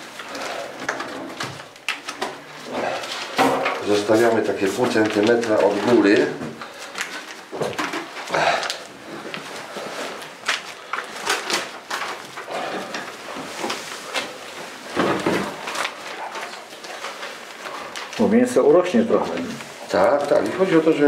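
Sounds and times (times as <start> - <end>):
foil crackling: 0.0 - 21.0.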